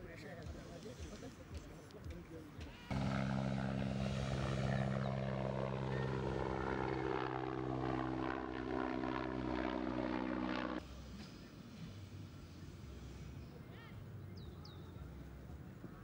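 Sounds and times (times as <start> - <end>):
helicopter rotor and engine drone: 2.9 - 10.8.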